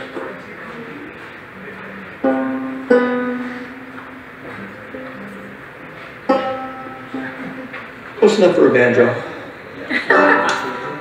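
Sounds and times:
banjo strings plucked: 2.1s - 8.2s, 10.1s - 11.0s.

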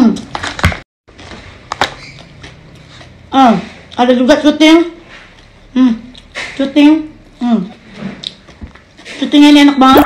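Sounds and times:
chewing crunchy chips: 1.2s - 4.1s, 7.2s - 9.2s.

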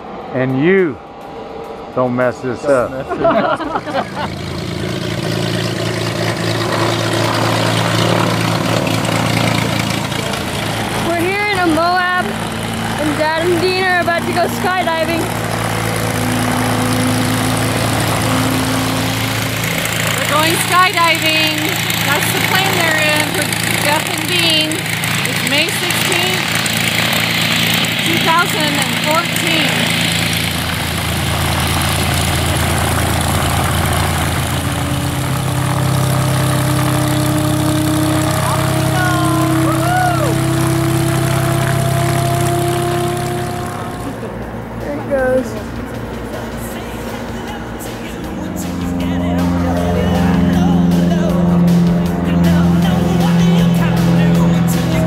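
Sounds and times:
propeller plane engine running: 0.0s - 55.0s.

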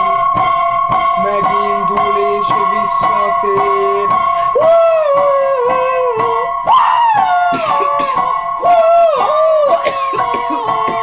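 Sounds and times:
steady held tones: 0.0s - 11.0s
young man singing wailing notes: 1.2s - 11.0s.

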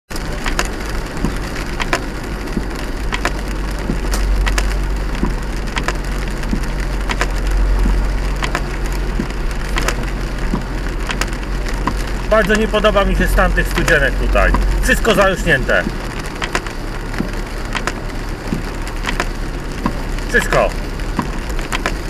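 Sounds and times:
rain ticking on windscreen: 0.1s - 22.0s
road rumble inside car: 0.1s - 22.0s.

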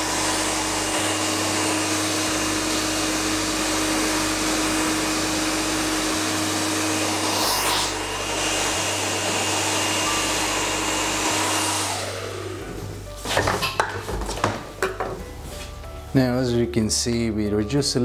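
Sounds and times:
hair dryer blowing: 0.0s - 13.9s.

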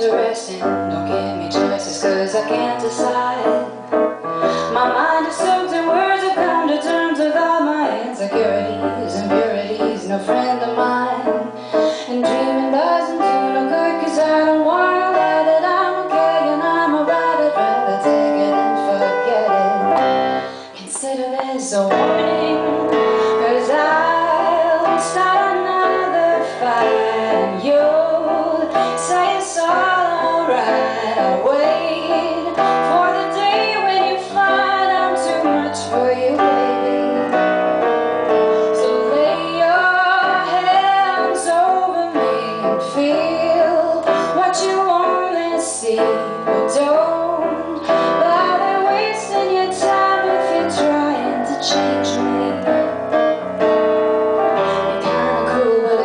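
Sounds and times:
woman singing pop ballad: 0.0s - 52.9s, 54.6s - 56.0s
piano: 0.0s - 56.0s.

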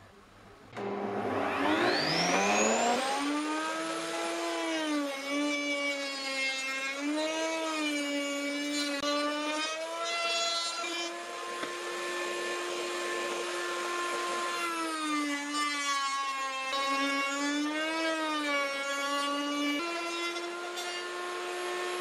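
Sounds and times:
wood router whining: 0.7s - 22.0s.

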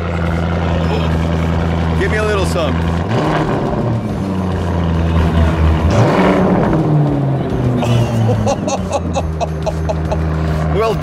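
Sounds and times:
car engine revving and idling: 0.0s - 11.0s.

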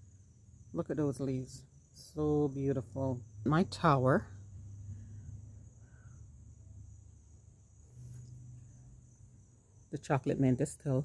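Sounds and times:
low hum: 0.0s - 10.0s
crickets trilling: 0.0s - 11.0s.

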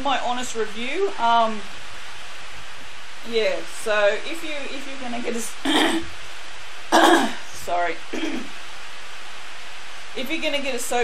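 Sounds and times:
woman coughing: 5.6s - 6.1s, 7.0s - 7.4s, 8.1s - 8.5s.

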